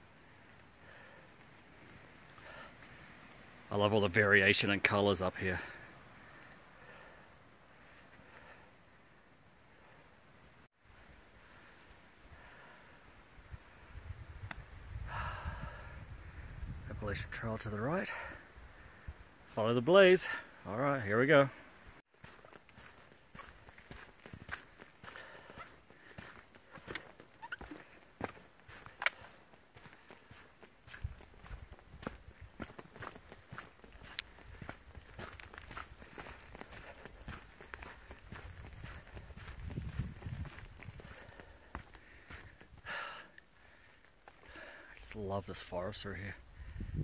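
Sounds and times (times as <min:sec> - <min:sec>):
footsteps on muddy trail: 0:22.1 - 0:45.2.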